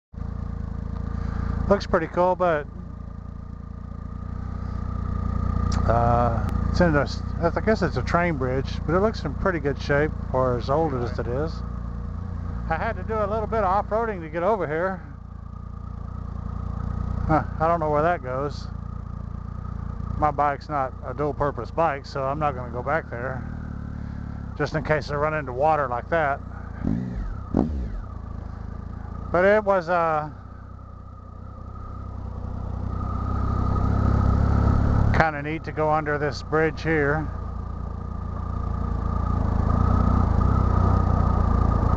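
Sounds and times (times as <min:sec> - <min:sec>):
motorcycle engine rumbling: 0:00.2 - 0:41.9.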